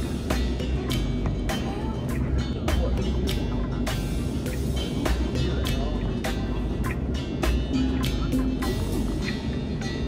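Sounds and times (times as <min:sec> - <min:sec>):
beat with deep bass: 0:00.0 - 0:10.0.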